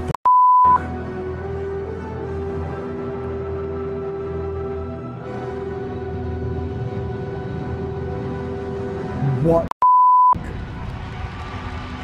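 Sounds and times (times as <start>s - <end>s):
music: 0.6s - 9.7s, 10.4s - 12.0s.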